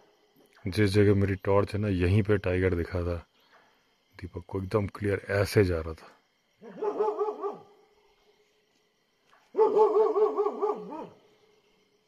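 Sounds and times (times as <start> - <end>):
insects chirring: 0.0 - 12.0
dog barking: 6.6 - 7.8, 9.5 - 11.2.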